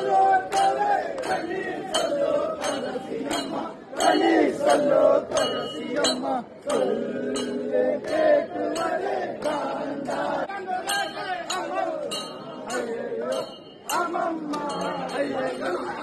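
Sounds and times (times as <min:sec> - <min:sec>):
brass hand bells ringing: 0:00.0 - 0:09.0, 0:10.8 - 0:16.0
crowd shouting and chanting: 0:00.0 - 0:16.0.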